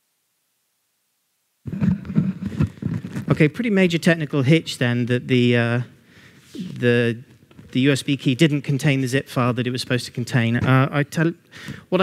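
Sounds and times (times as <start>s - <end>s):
person talking in a room: 1.6s - 12.0s.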